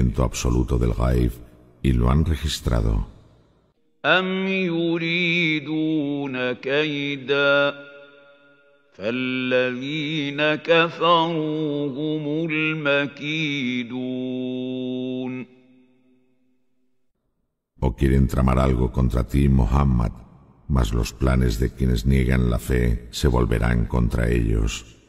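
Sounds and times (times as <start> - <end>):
man chanting melodic recitation: 9.0 - 15.5, 17.8 - 24.9.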